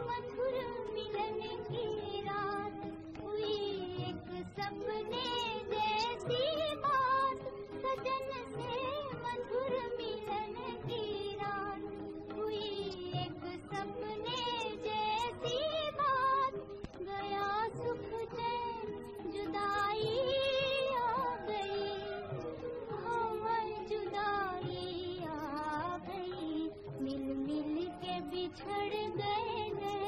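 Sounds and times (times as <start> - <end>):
high singing voice with vibrato: 0.0 - 30.0
light instrumental accompaniment: 0.0 - 30.0.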